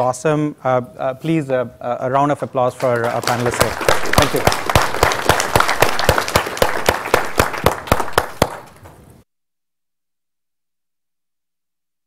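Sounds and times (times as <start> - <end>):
audience applause: 2.8 - 9.1.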